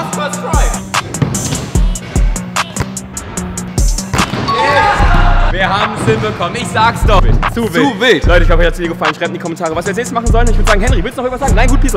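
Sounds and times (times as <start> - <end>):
kick drum thumps: 0.6 - 3.0, 5.0 - 6.2, 7.0 - 8.7.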